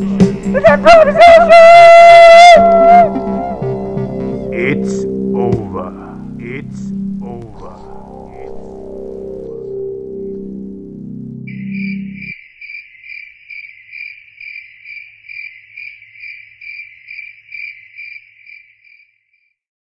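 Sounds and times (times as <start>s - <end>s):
backing music: 0.0s - 12.3s
cricket chirping: 11.4s - 19.6s.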